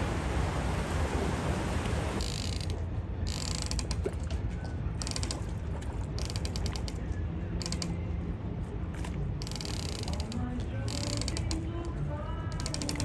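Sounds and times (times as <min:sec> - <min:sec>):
steady low rumble: 0:00.0 - 0:06.2, 0:06.8 - 0:09.4
rapid mechanical clicking: 0:02.2 - 0:04.4, 0:05.0 - 0:08.2, 0:09.4 - 0:13.0.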